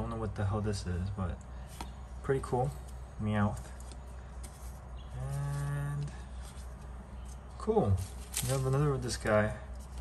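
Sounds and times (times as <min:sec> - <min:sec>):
man humming: 0:05.1 - 0:06.2.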